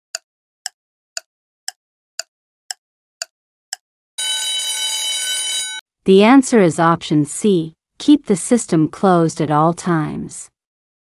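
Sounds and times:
timer ticks: 0.1 - 3.8
bell-like alarm ring: 4.2 - 5.8.

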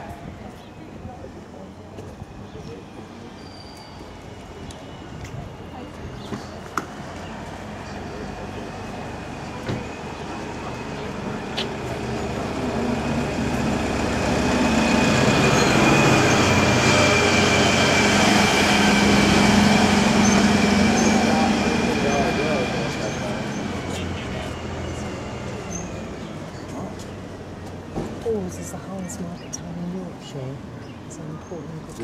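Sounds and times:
lorry engine running: 5.6 - 28.8.

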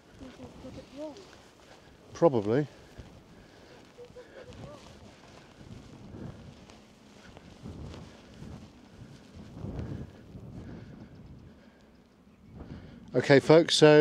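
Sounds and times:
wind gusting across microphone: 0.0 - 14.0.

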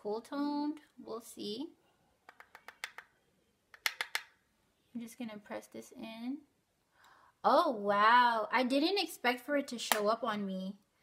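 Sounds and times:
makeup brush clicking on compact: 2.3 - 3.1, 3.8 - 4.3.

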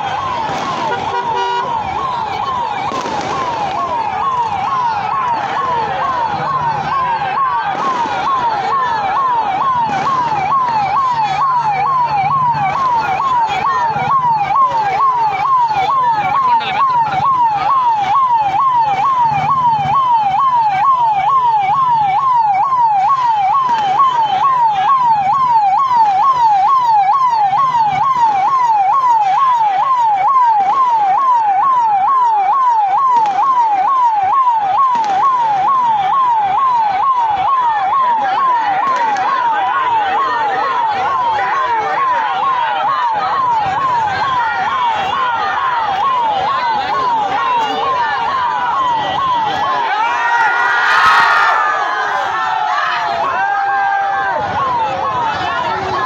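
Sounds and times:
crowd noise: 0.0 - 56.0
police siren warbling: 0.0 - 56.0.

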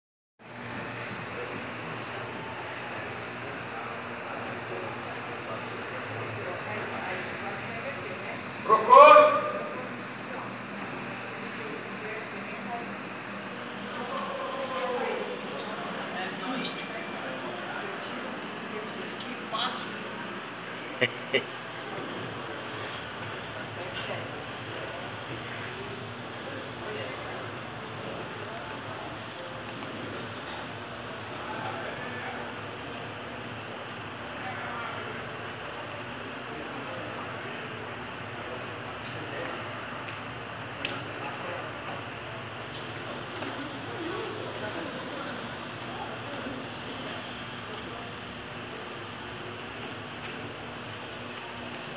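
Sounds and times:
indistinct background talk: 0.5 - 51.9
room noise: 0.5 - 51.9.

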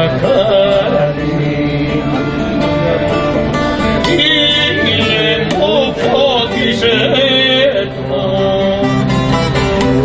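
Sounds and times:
man singing: 0.0 - 3.2, 3.9 - 9.3
acoustic guitar: 0.0 - 10.0
long-necked lute plucked: 0.0 - 10.0.

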